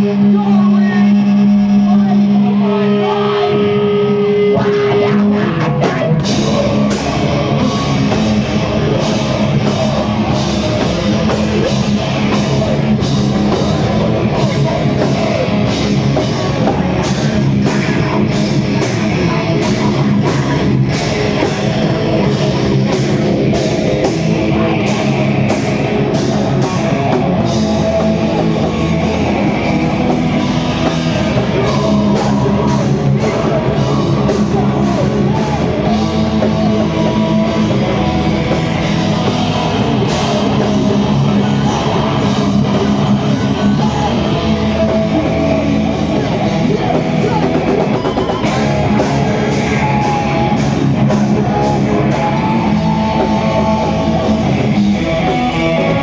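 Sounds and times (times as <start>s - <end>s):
bass guitar: 0.0s - 56.0s
electric guitar: 0.0s - 56.0s
heavy rock band playing: 0.0s - 56.0s.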